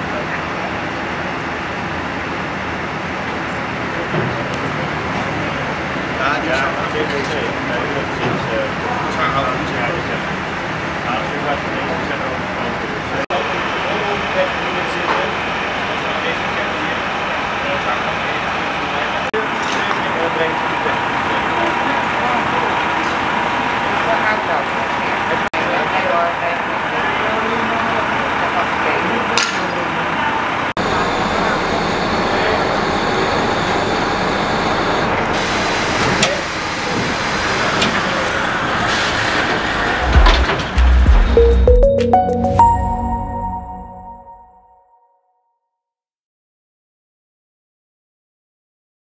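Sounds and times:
indistinct voices: 36.2 - 41.7
traffic hum: 36.5 - 41.4.

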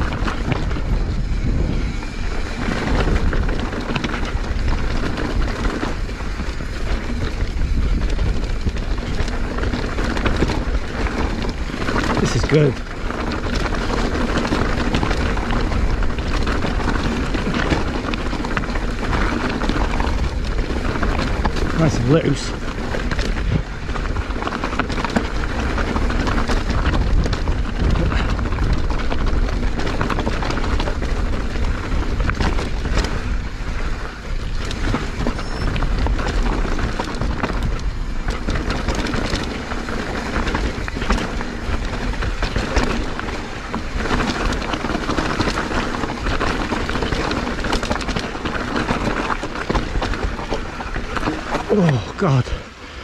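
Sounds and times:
tyres crunching over loose rock: 0.0 - 52.8
bike knocking and rattling: 0.0 - 53.0
wind rumble on microphone: 0.0 - 53.0.

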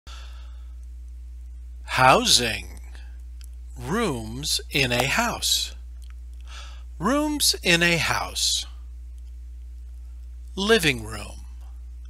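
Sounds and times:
faint breathy hiss: 0.1 - 1.0, 6.4 - 7.3
low electrical hum: 0.1 - 12.0
person speaking: 1.9 - 3.0, 3.8 - 5.8, 6.5 - 8.8, 10.5 - 11.6.

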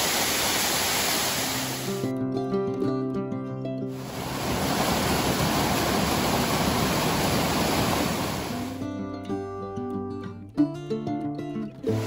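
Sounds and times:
waterfall rushing: 0.0 - 2.0, 4.0 - 8.8.

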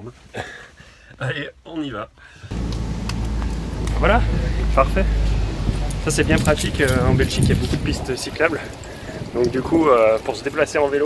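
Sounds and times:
low street rumble: 2.5 - 11.0.

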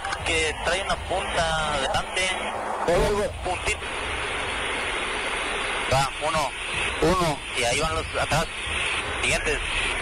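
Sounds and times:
aircraft engine drone: 0.0 - 10.0
crew radio transmissions: 0.0 - 10.0
radio hiss: 0.0 - 10.0.

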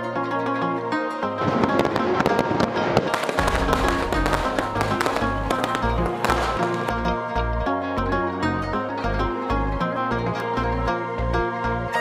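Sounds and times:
background music with bass pulse: 0.0 - 12.0
fireworks crackling and popping: 1.4 - 7.1.

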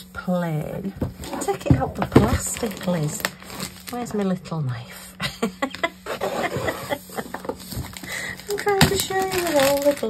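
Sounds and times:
plastic wrap crinkling: 0.9 - 4.4, 5.7 - 10.0.

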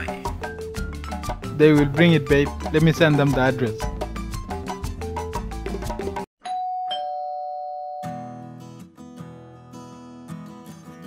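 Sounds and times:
background music: 0.0 - 6.3
two-note doorbell chime: 6.4 - 8.5.

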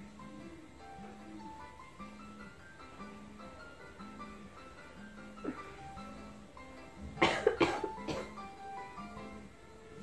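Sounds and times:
soft background music: 0.0 - 10.0
person coughing: 7.2 - 8.4.

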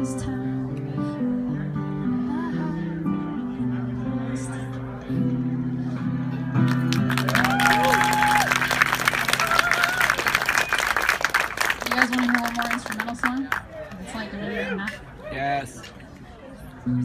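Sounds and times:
acoustic guitar playing: 0.0 - 10.6
audience applause and cheers: 6.6 - 12.8.

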